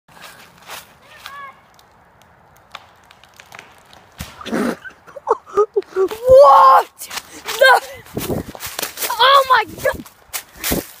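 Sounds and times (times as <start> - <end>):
footsteps on dry leaves: 0.1 - 1.7, 6.1 - 11.0.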